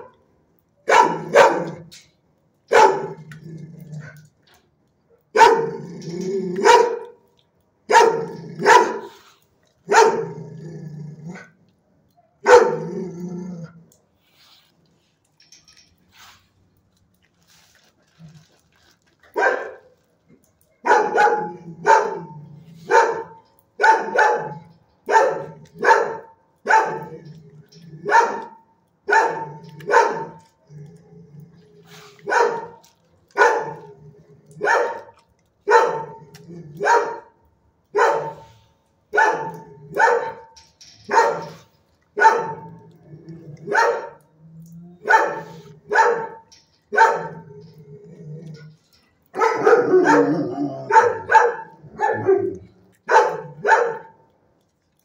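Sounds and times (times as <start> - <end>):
dog barking: 0.8 - 1.9, 2.7 - 3.2, 5.3 - 5.7, 6.6 - 7.1, 7.9 - 9.2, 9.9 - 10.4, 12.2 - 12.9, 19.4 - 19.8, 20.8 - 27.1, 28.1 - 30.4, 32.2 - 32.8, 33.4 - 33.8, 34.6 - 35.1, 35.7 - 36.2, 36.8 - 37.3, 38.0 - 40.5, 41.1 - 41.6, 42.2 - 42.7, 43.7 - 44.2, 45.0 - 47.4, 49.4 - 54.2.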